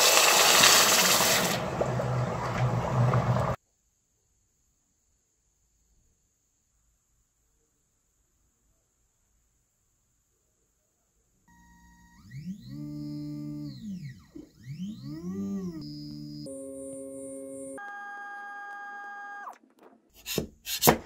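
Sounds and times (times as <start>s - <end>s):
stepper motor whining: 11.5s - 19.5s.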